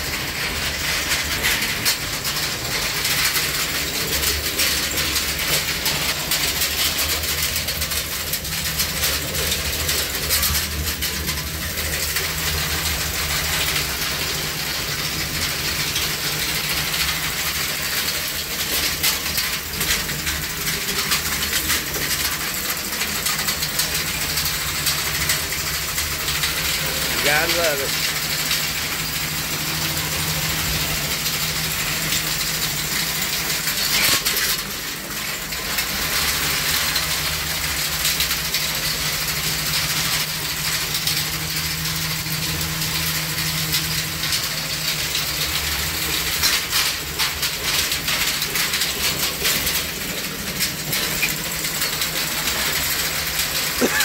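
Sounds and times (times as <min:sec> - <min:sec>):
chain rattling and clicking: 0:00.0 - 0:54.0.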